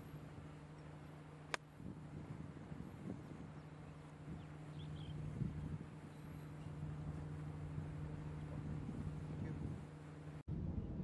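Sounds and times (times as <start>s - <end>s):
low outdoor hum: 0.0s - 11.0s.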